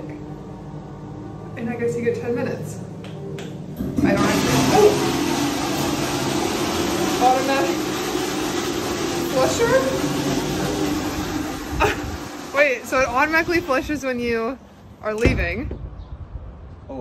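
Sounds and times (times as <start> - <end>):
toilet flushing: 3.8 - 14.6.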